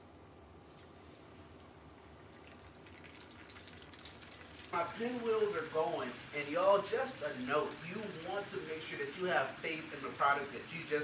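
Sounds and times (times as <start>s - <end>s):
fish deep-frying in oil: 1.4s - 11.0s.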